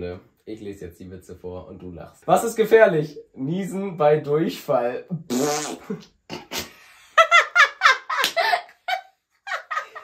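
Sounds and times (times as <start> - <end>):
person laughing: 5.7 - 10.0.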